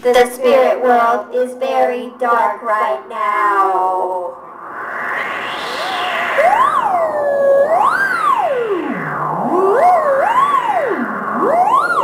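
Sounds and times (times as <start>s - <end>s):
theremin wavering tone: 0.0s - 12.0s.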